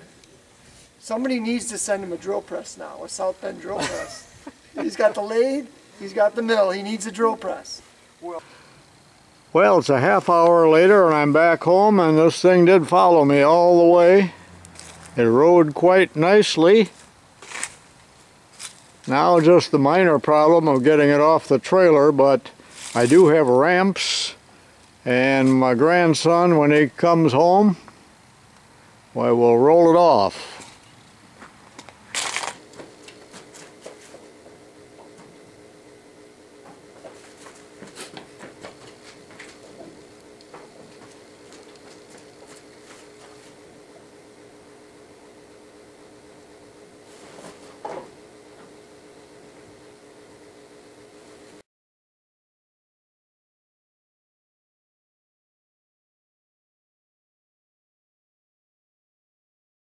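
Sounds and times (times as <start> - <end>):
faint rustles: 47.0 - 48.2.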